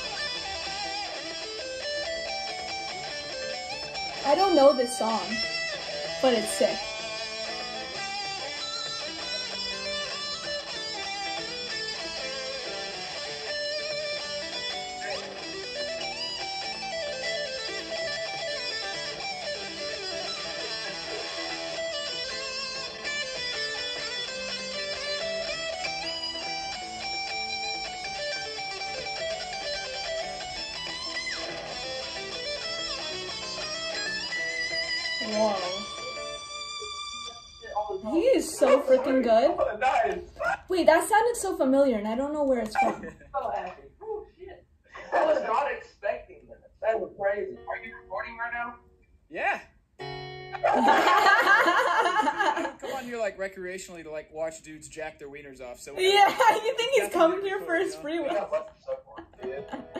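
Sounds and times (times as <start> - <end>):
electric guitar solo: 0.0 - 43.8, 50.0 - 53.3, 56.0 - 59.9.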